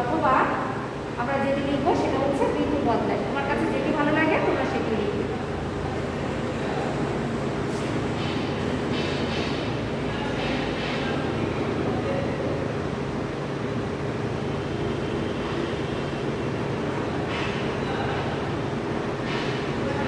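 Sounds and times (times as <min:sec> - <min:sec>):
low background hum: 0:00.0 - 0:20.0.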